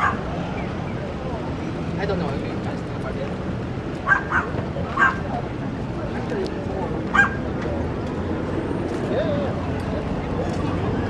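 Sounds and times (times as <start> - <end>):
dog barking: 0.0 - 0.2, 4.0 - 5.2, 7.1 - 7.4
murmur of a crowd: 0.0 - 11.0.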